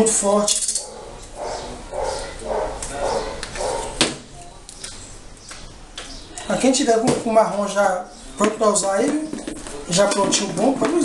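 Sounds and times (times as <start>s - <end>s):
dog barking: 0.8s - 4.0s.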